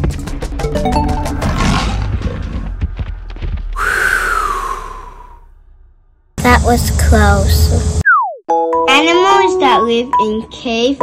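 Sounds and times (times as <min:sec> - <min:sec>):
clattering animal footfalls: 0:01.8 - 0:03.8.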